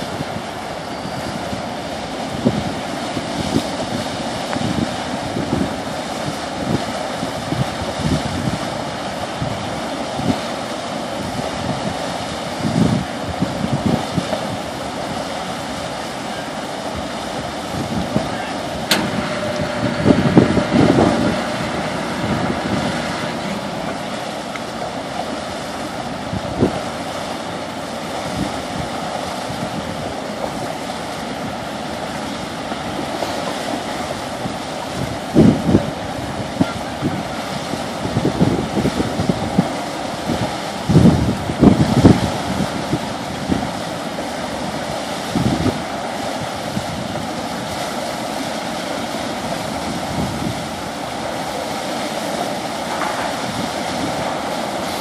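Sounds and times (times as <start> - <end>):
wind buffeting microphone: 0.0 - 15.8, 16.8 - 55.0
churning water: 0.0 - 55.0.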